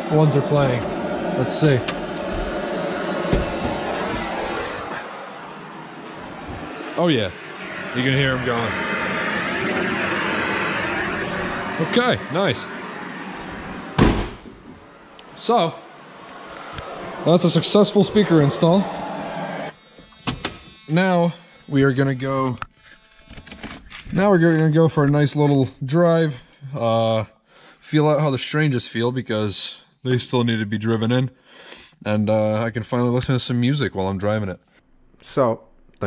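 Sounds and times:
radio static hiss: 0.0 - 14.0.

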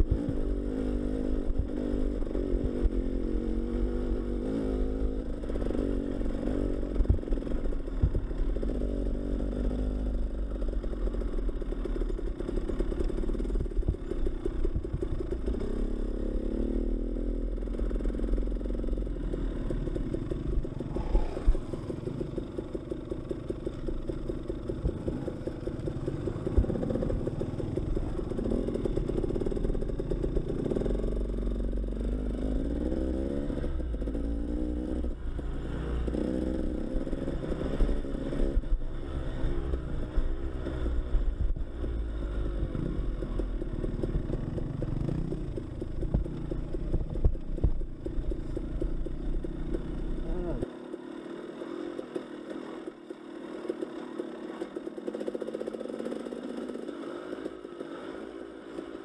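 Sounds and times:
dirt bike engine: 0.0 - 59.0.

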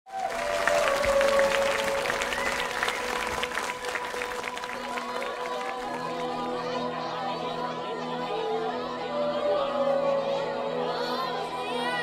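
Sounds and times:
audience applauding: 0.1 - 6.4.

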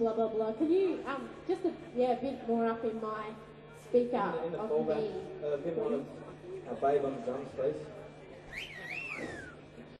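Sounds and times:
person whistling: 8.5 - 9.6.

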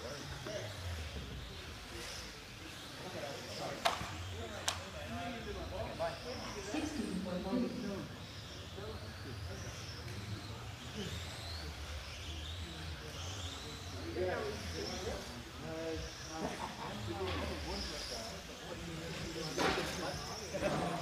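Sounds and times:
electric motors whining: 0.0 - 21.0.

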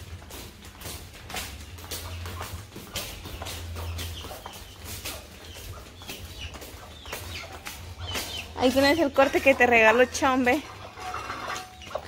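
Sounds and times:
flip-flop footsteps on concrete: 0.0 - 12.0
hen clucking: 1.8 - 12.0.

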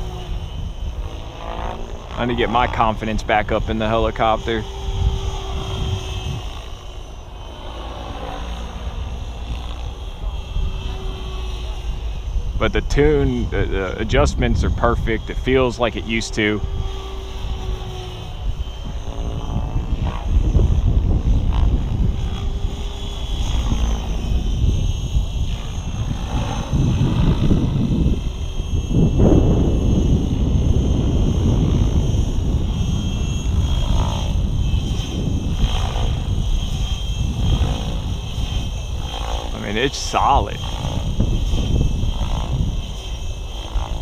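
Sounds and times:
rc helicopter rotor and motor: 0.0 - 44.0
low rumble: 23.0 - 43.0.

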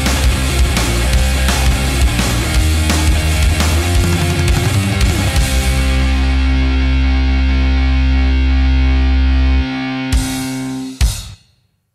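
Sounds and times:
distorted guitar and bass chord: 0.0 - 11.0.

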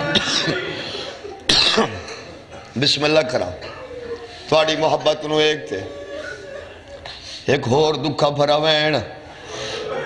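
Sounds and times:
man coughing: 0.0 - 0.8, 1.5 - 2.8.

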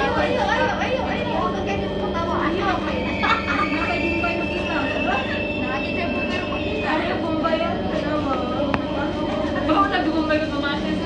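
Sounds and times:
high whine: 0.0 - 11.0
train running rumble: 0.0 - 11.0.

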